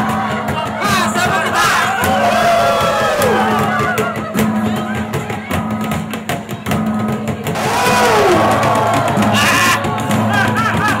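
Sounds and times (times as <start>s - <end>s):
percussion strikes: 0.0s - 11.0s
voices calling out: 7.6s - 10.8s.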